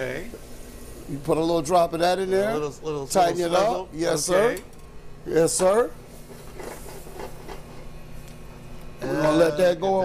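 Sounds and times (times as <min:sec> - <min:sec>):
kitchen hum: 0:00.0 - 0:10.0.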